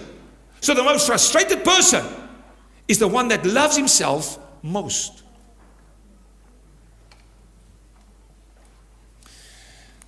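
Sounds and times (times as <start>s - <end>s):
person breathing in: 9.2s - 10.0s.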